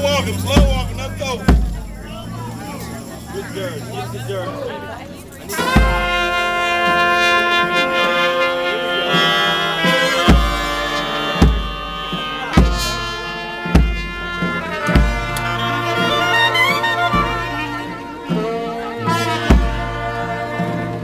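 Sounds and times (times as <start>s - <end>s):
bass drum beat: 0.0s - 2.6s, 5.6s - 7.0s, 9.8s - 21.0s
brass band playing slow dirge: 5.5s - 21.0s.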